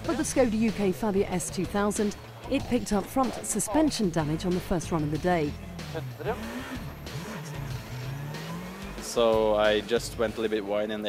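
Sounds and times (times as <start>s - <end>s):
rally car engine revving: 4.2s - 10.3s.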